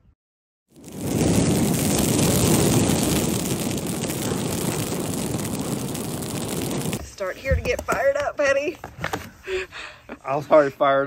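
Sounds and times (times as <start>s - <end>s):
fiery roaring rumble: 0.7s - 7.0s.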